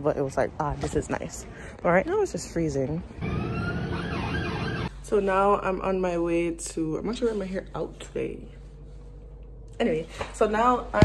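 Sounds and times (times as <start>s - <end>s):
low rumble of street noise: 0.0s - 11.0s
siren wailing: 3.2s - 4.9s.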